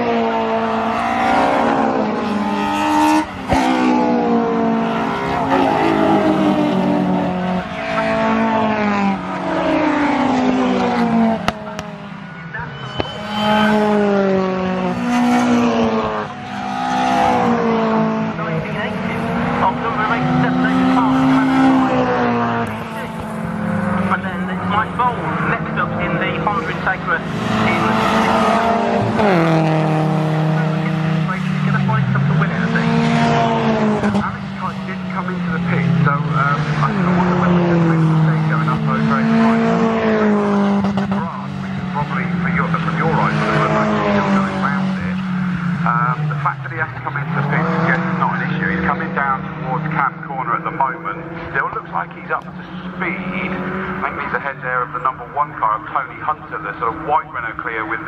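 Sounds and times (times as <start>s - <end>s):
racing car engines revving: 0.0s - 58.0s.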